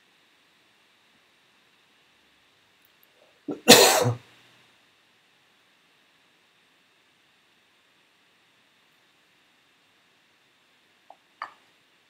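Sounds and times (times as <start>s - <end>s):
man coughing: 3.5s - 4.2s.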